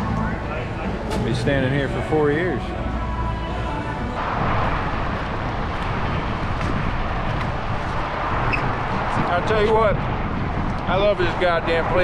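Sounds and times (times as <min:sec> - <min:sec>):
music playing: 0:00.0 - 0:05.2
dense even wash of noise: 0:02.8 - 0:12.0.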